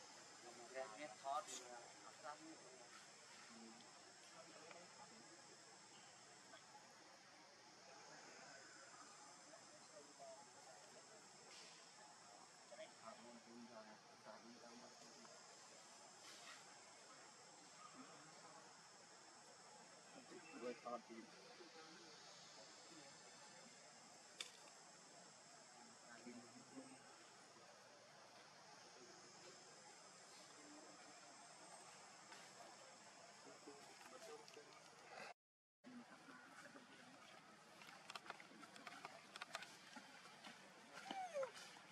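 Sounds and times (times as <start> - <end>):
faint high-pitched hiss: 0.0 - 41.9.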